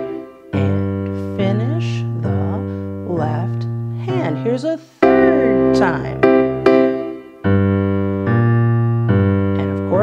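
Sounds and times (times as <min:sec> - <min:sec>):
digital piano blues chords: 0:00.0 - 0:10.0.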